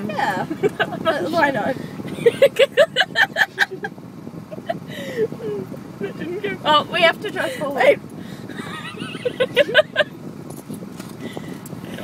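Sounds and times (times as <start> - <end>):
woman laughing: 0.2 - 1.2, 2.1 - 3.9, 8.5 - 10.1.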